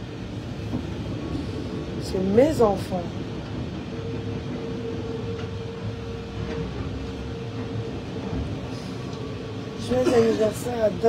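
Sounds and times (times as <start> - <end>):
train carriage rumble: 0.0 - 11.0.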